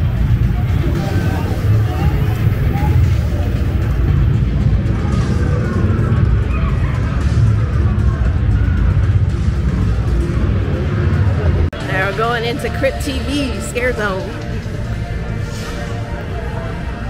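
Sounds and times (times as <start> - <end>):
heavy low rumble: 0.0 - 17.0
loud outdoor music: 0.0 - 17.0
voices of passers-by: 0.0 - 17.0.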